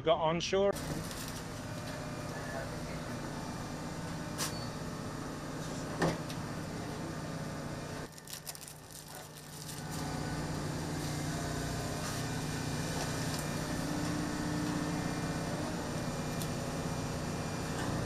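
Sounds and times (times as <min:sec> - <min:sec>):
machinery and ventilation hum: 0:00.0 - 0:18.0.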